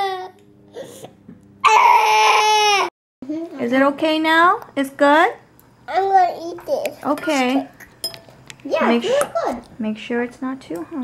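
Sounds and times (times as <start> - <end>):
boy wailing: 1.6 - 2.9.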